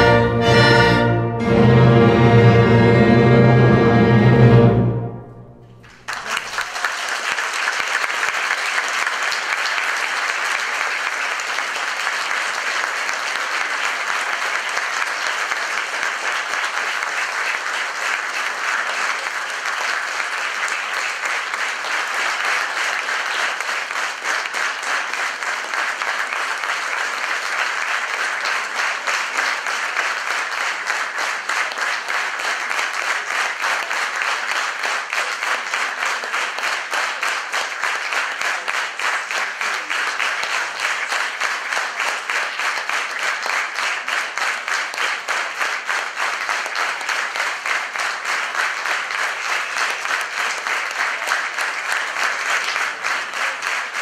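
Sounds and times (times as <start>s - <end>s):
audience applauding: 5.6s - 54.0s.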